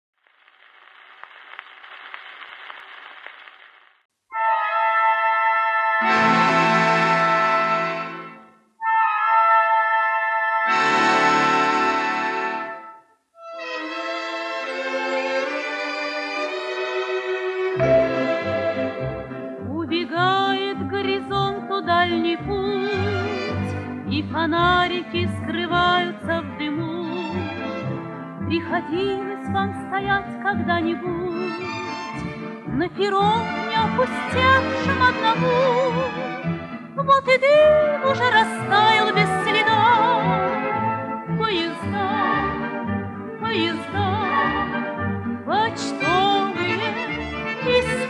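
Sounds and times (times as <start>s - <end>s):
record surface noise: 0.2s - 4.1s
brass-led orchestral chords: 17.8s - 19.6s
orchestral passage over bass: 17.8s - 19.7s
woman singing: 19.6s - 27.5s, 28.5s - 31.6s, 32.7s - 36.2s, 37.0s - 40.5s, 41.4s - 42.6s, 43.4s - 44.7s, 45.5s - 47.0s, 47.6s - 48.0s.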